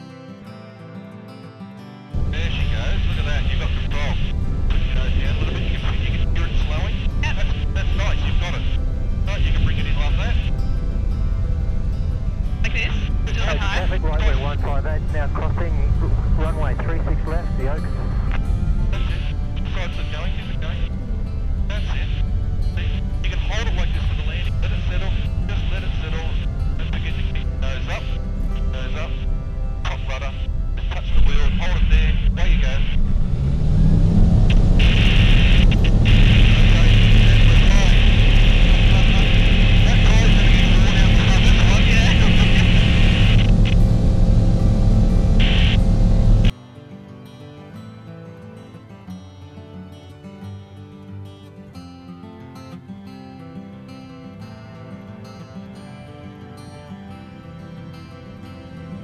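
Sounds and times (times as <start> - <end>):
soft background music: 0.0 - 59.0
propeller engine running: 2.2 - 46.5.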